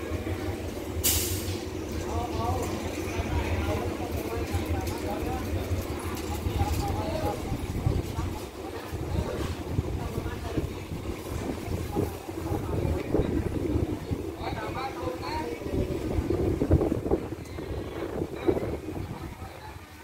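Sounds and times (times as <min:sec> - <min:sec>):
people talking indistinctly: 0:00.0 - 0:20.0
train rumbling low: 0:00.0 - 0:20.0
wind buffeting microphone: 0:05.4 - 0:20.0.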